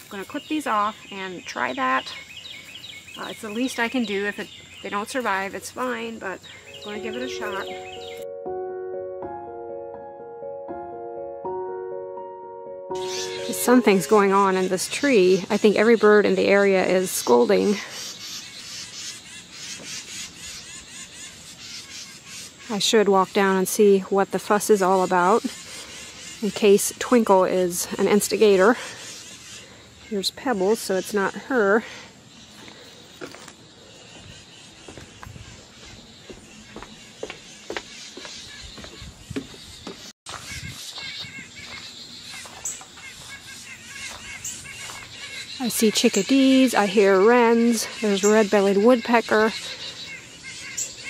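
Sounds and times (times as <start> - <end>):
songbirds scolding chatter: 0.0 - 8.2, 12.9 - 51.0
footsteps on wooden deck: 32.5 - 45.3.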